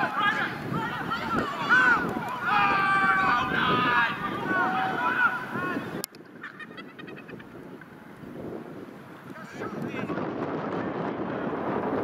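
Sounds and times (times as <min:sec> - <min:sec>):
players shouting: 0:00.0 - 0:06.0
wind on microphone: 0:00.0 - 0:12.0.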